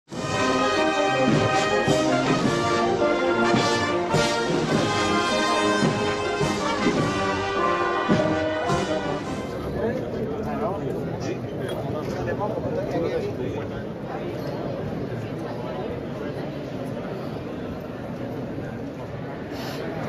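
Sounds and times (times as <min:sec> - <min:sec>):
brass band sustained chords: 0:00.1 - 0:09.9.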